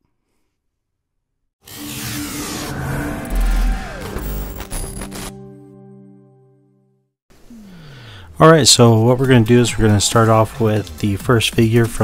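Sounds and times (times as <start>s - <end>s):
downward gliding tone: 1.7s - 6.0s.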